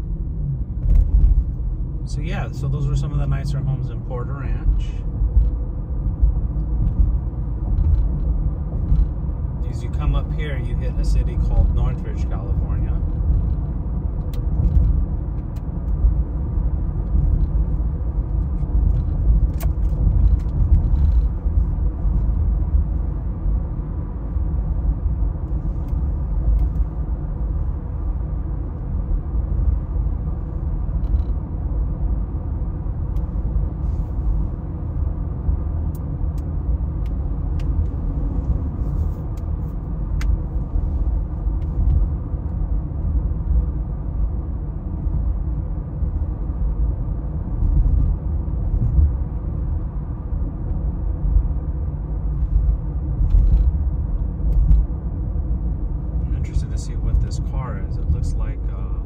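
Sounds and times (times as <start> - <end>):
car engine rumble: 0.0 - 59.0.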